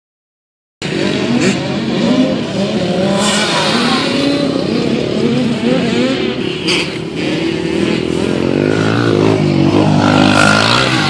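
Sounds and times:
motocross bike engines revving: 0.8 - 11.0.

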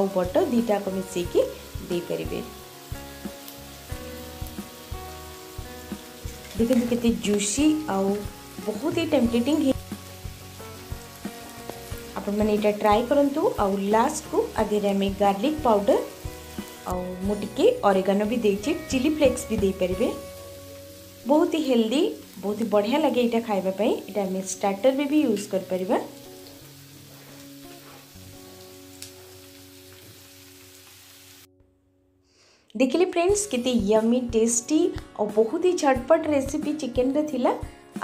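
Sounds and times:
chicken sizzling in a pan: 0.0 - 31.5.

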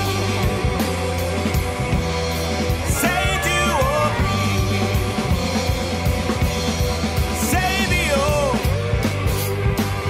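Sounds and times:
blues-rock song: 0.0 - 10.0.

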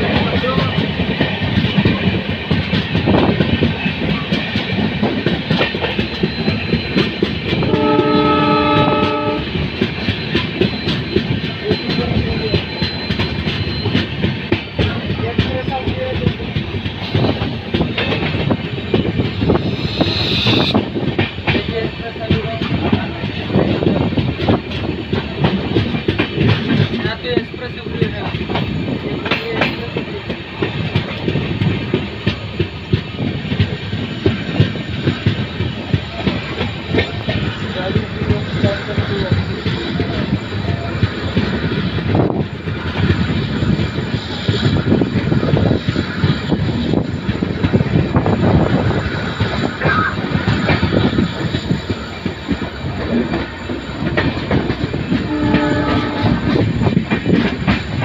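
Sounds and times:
train wheels running on rails: 0.0 - 58.0
locomotive horn: 7.6 - 9.5, 55.2 - 56.6
rapid clicks over track: 21.0 - 40.4.

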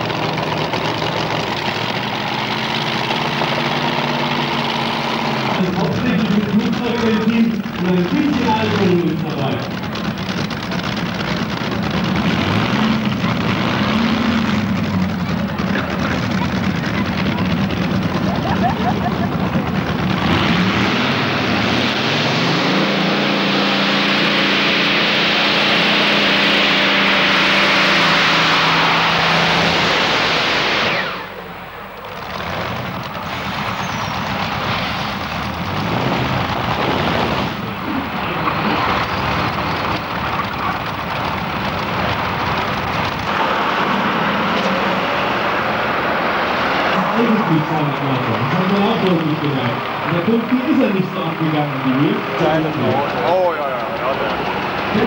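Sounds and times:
tractor engine at full power: 0.0 - 55.0.

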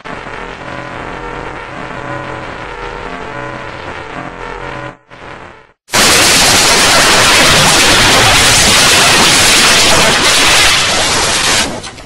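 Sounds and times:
low hum: 0.0 - 9.0
distorted layered electronic tones: 0.0 - 11.3.

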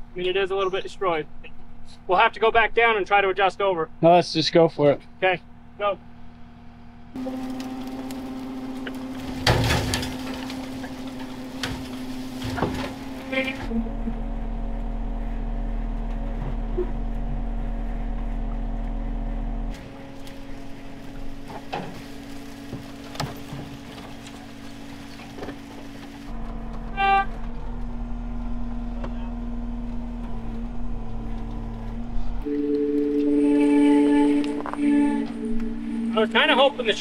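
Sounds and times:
vehicle engines running: 0.0 - 37.0
winch dragging truck: 7.1 - 37.0
branches snapping against truck: 7.2 - 13.3
background music: 32.5 - 37.0.

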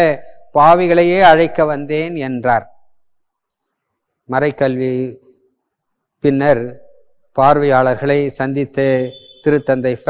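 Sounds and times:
man speaking: 0.0 - 2.7, 4.3 - 5.2, 6.2 - 6.8, 7.4 - 10.0.

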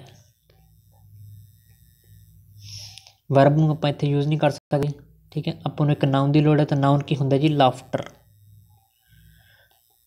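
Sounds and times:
low electrical hum: 0.0 - 10.0
soft intake of breath: 2.6 - 3.2, 9.0 - 9.8.

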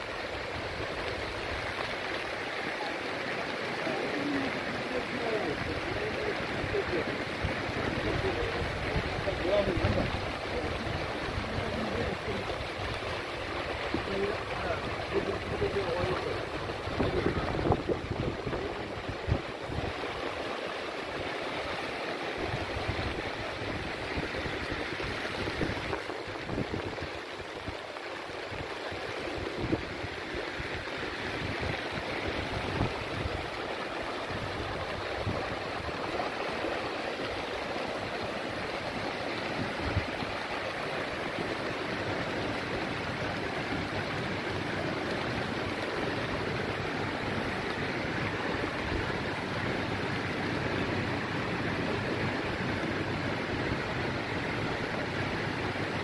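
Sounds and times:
floodwater running: 0.0 - 56.0.

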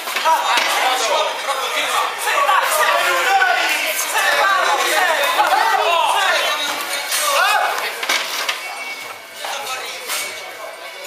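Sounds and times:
crowd voices and shouting: 0.0 - 11.0.

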